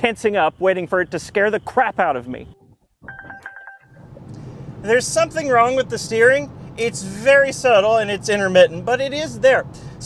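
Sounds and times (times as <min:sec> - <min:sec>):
road and tyre noise: 0:00.0 - 0:10.0
car electronic chime beeps: 0:02.5 - 0:04.1.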